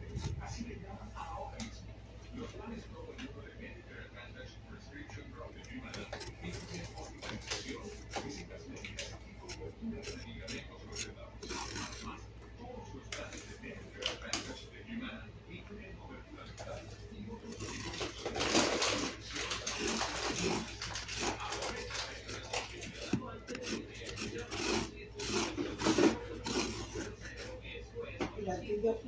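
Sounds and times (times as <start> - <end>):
tool scraping pumpkin flesh: 5.5 - 12.2, 17.4 - 27.6.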